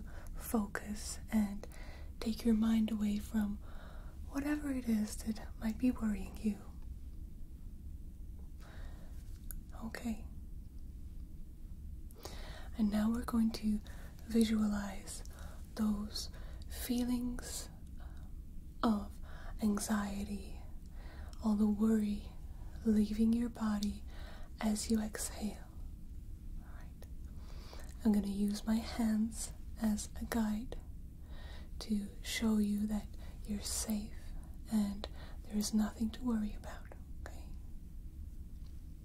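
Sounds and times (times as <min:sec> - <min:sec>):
person whispering: 0:00.0 - 0:03.6, 0:04.2 - 0:06.8, 0:09.4 - 0:10.3, 0:12.7 - 0:17.8, 0:18.8 - 0:20.7, 0:21.3 - 0:25.7, 0:31.8 - 0:37.6
soft breathy hiss: 0:00.0 - 0:39.0.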